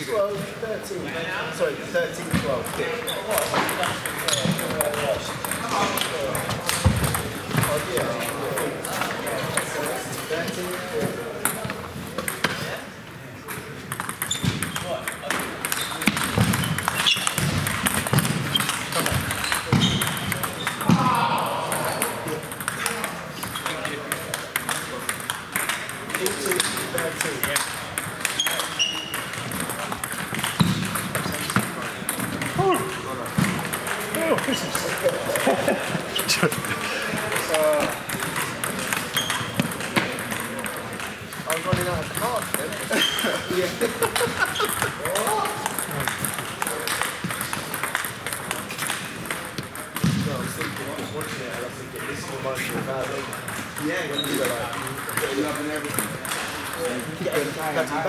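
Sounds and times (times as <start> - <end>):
table tennis balls clicking: 2.1 - 12.8, 13.4 - 58.0.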